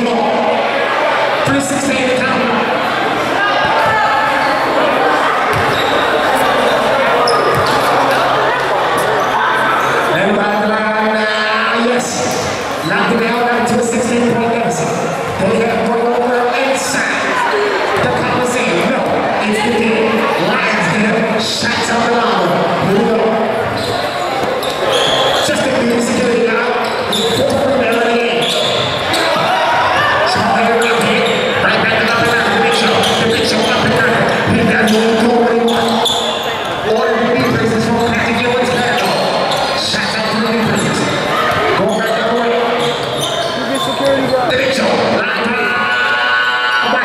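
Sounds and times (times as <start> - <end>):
hubbub of voices: 0.0 - 47.0.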